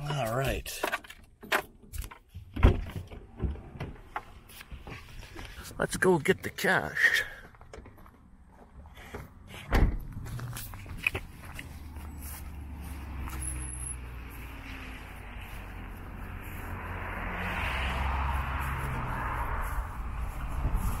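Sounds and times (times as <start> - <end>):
road traffic rumble: 0.0 - 21.0
vehicle tyre noise passing: 10.0 - 21.0
footsteps through grass: 10.2 - 21.0.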